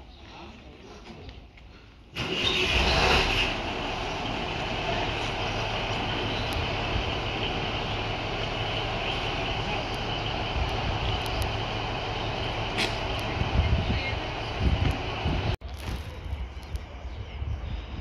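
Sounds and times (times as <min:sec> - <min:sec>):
diesel engine starting and idling: 0:02.1 - 0:15.6.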